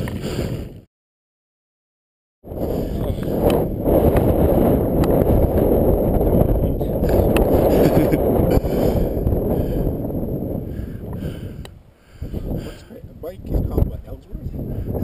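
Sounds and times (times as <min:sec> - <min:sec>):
wind rushing over microphone: 0:00.0 - 0:00.9, 0:02.4 - 0:15.0.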